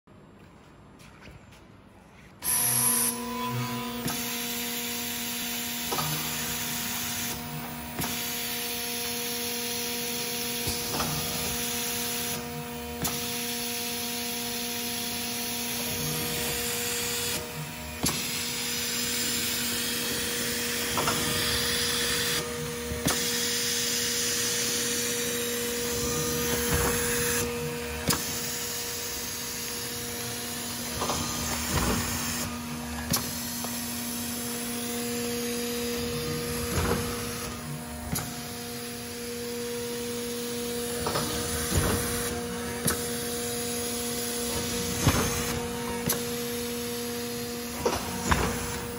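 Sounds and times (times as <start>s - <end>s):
laminating machine motor hum: 2.5s - 48.9s.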